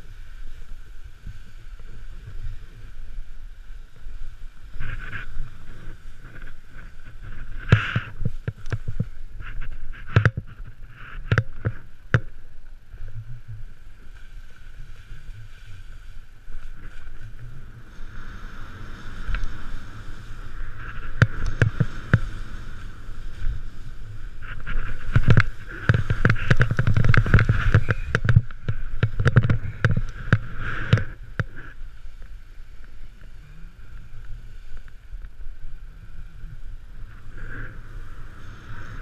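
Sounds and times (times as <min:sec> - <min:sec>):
snowboard hissing and scraping on snow: 0:00.0 - 0:12.1, 0:12.8 - 0:39.0
snowboard knocks and scrapes: 0:04.7 - 0:12.4, 0:19.1 - 0:31.8.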